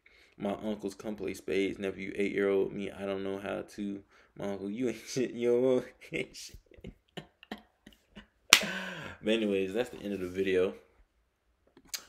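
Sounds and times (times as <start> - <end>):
sharp loud snap: 8.5 - 8.8.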